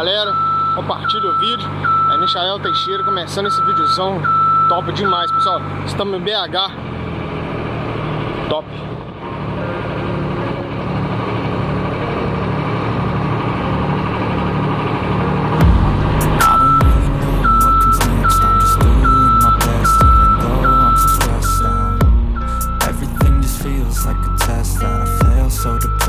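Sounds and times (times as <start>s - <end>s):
high beeping: 0.0s - 5.9s, 15.7s - 26.0s
diesel engine running: 0.0s - 26.0s
music with heavy bass: 9.4s - 26.0s.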